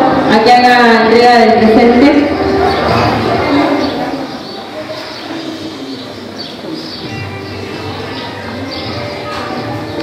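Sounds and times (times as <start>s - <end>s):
birds chirping: 0.0s - 10.0s
murmur of room noise: 0.0s - 10.0s.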